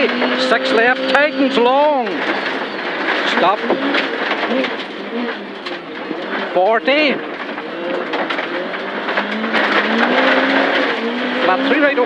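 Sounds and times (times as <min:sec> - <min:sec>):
car engine accelerating: 0:00.0 - 0:12.0
gravel rattling under car: 0:00.0 - 0:12.0.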